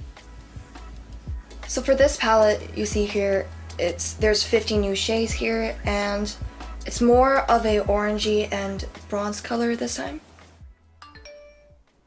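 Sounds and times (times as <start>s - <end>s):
phone notification chime: 11.0s - 11.8s.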